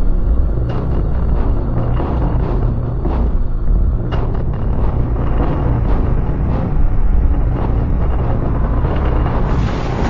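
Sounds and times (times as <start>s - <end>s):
bicycle road rumble: 0.0s - 10.0s
wind rush on microphone: 0.0s - 10.0s.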